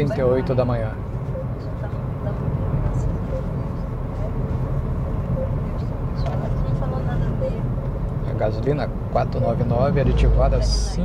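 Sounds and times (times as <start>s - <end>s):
tyre and engine rumble: 0.0s - 11.0s.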